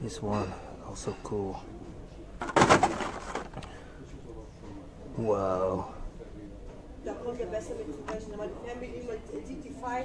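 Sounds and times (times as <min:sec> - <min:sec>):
plastic packages rustling and clattering: 0:02.4 - 0:03.8.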